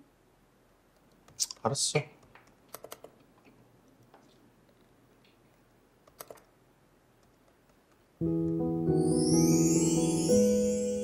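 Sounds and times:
laptop keyboard clicks: 2.2s - 3.2s, 6.0s - 6.5s
instrumental background music: 8.2s - 11.0s.

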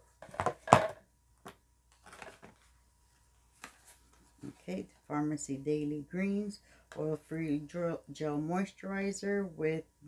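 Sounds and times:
packaging knocks and rustles: 2.0s - 2.6s.

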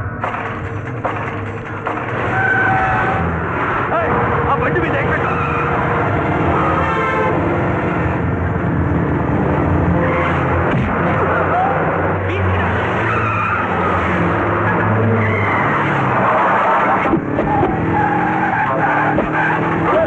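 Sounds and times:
vehicle engines on a road: 0.0s - 20.0s
long steady horn-like tones: 6.4s - 8.0s.

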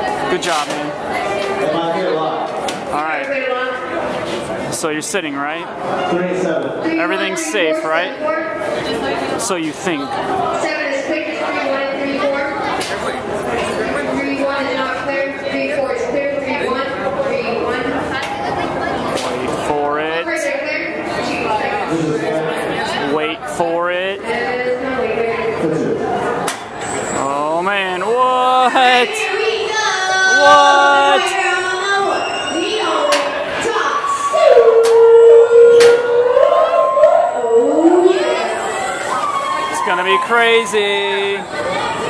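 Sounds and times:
people talking over each other: 0.0s - 34.5s, 35.8s - 42.0s
high cry: 27.2s - 33.0s
people whooping and yelling: 27.2s - 33.0s, 33.9s - 42.0s.

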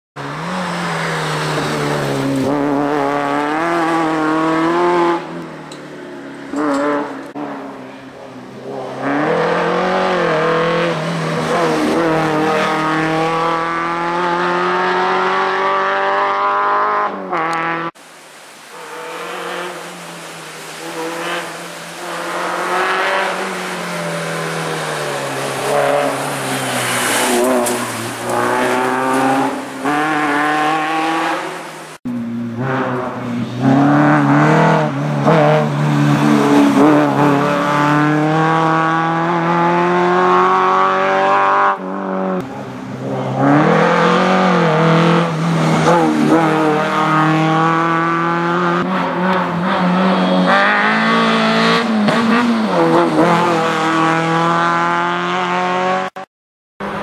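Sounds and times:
rally car engine revving: 0.2s - 5.8s, 6.4s - 18.0s, 18.7s - 57.0s.

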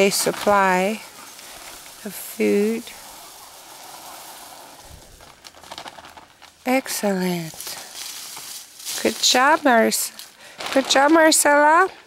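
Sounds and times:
dry food pouring onto leaves: 0.0s - 11.8s.

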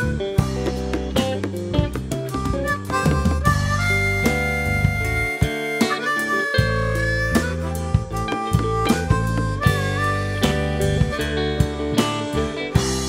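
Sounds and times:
bass line: 0.0s - 13.0s
drums: 0.0s - 13.0s
harmonica solo: 0.0s - 13.0s.

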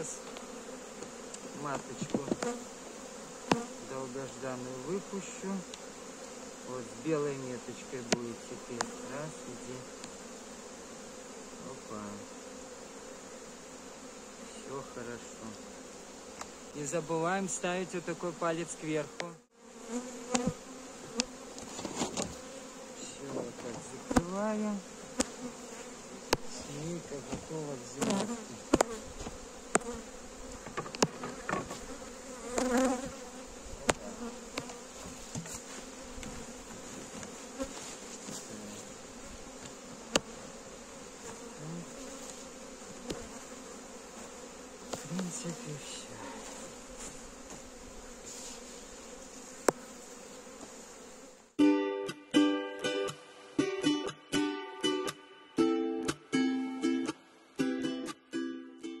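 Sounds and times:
clicks and rustles of hive: 0.0s - 10.3s, 14.1s - 16.7s, 17.6s - 50.9s
honey bees humming: 0.0s - 58.2s
plucked-string music: 51.6s - 59.0s.

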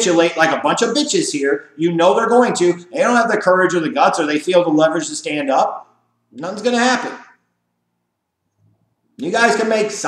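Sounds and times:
man speaking: 0.0s - 7.4s, 9.2s - 10.0s
faint room hum: 0.0s - 10.0s.

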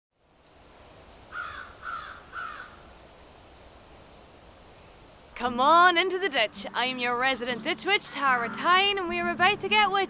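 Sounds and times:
faint steady hiss: 0.1s - 10.0s
crow cawing: 1.3s - 2.8s.

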